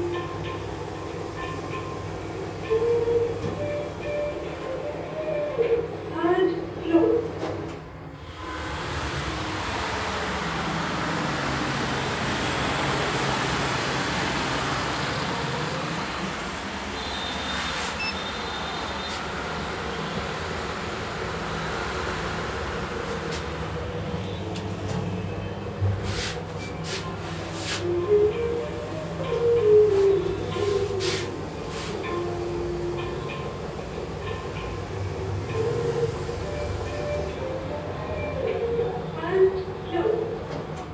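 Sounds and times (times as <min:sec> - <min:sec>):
elevator rumble and hum: 0:00.0 - 0:40.9.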